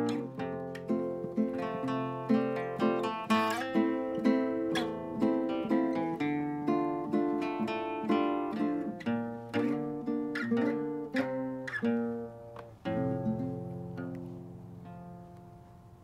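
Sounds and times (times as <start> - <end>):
guitar picked notes: 0.0 - 16.0.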